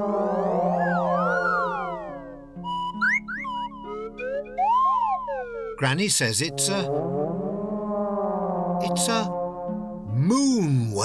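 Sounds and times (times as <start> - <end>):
long low whale call: 0.0 - 2.8.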